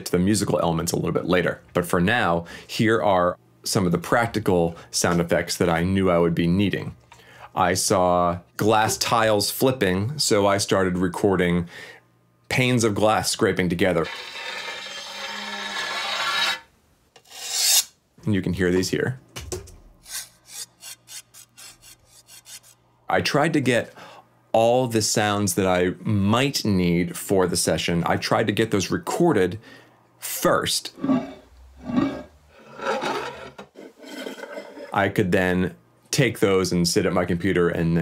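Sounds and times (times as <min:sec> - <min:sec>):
glass panes scraping together: 0:14.0 - 0:16.6, 0:31.0 - 0:35.0.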